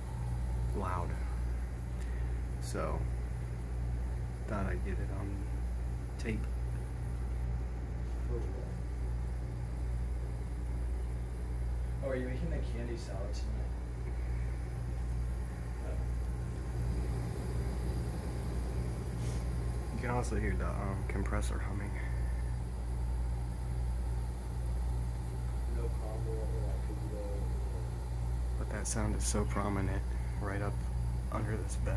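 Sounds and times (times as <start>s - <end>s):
air conditioning system humming: 0.0s - 31.9s
hiss of air at vent: 0.0s - 31.9s.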